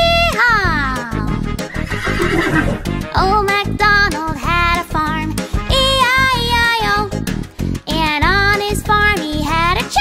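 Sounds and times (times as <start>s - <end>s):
children's background music: 0.0s - 10.0s
horse whinny: 1.6s - 3.0s.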